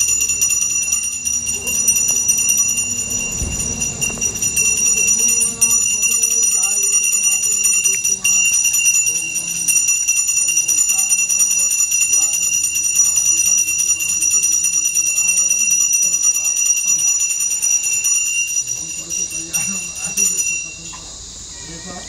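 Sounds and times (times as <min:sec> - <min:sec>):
person reciting: 0:00.0 - 0:14.7
bell rung rapidly: 0:00.0 - 0:21.2.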